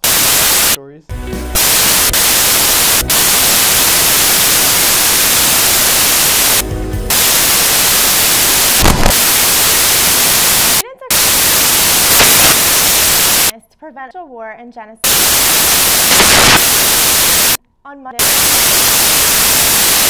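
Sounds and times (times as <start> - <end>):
static hiss: 0.0 - 0.8, 1.5 - 13.5, 15.0 - 17.6, 18.2 - 20.0
crackle: 1.6 - 13.5, 15.1 - 17.6, 18.2 - 20.0.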